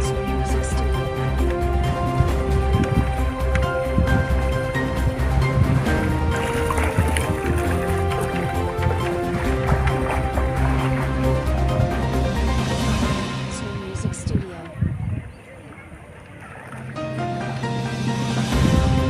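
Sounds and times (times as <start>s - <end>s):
background music with held tones: 0.0s - 14.7s, 16.9s - 19.0s
pulsing bass line: 0.0s - 15.3s, 17.0s - 19.0s.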